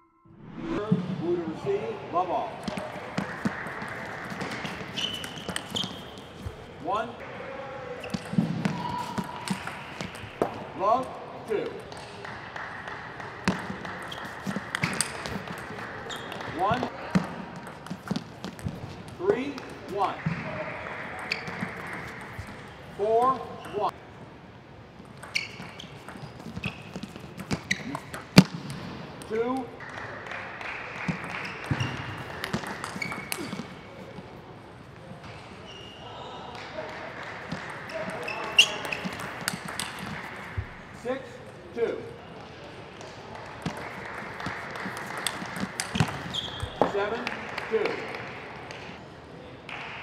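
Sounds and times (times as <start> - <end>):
shoes squeaking on floor: 2.6 - 7.0, 8.0 - 10.6, 13.4 - 20.1, 21.1 - 23.9, 25.0 - 28.6, 31.1 - 36.2, 37.6 - 41.1, 43.6 - 47.2
table tennis ball clicks: 31.2 - 33.7, 38.7 - 40.4.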